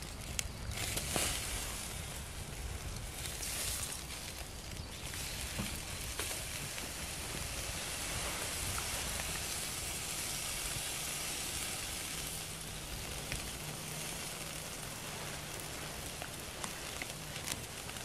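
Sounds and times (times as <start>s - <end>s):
burning wood crackling: 0.0s - 18.0s
meat sizzling on a grill: 0.0s - 18.0s.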